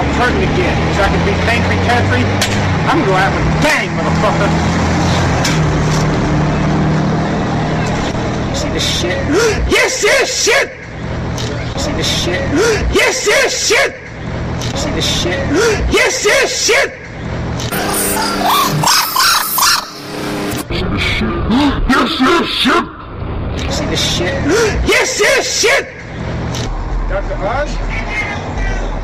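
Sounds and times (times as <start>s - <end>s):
vehicle engine and road noise: 0.0s - 29.0s
short high barks: 17.7s - 20.1s.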